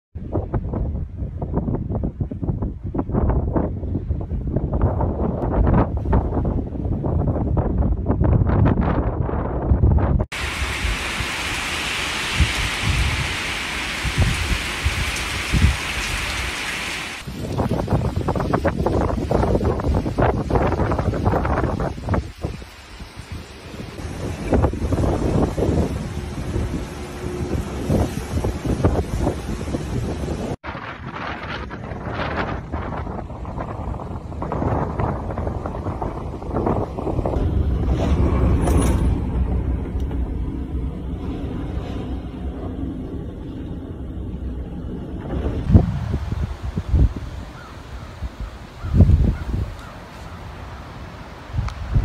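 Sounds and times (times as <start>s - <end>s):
wind buffeting the microphone: 0.2s - 52.0s
driving rain and wind hiss: 10.2s - 52.0s.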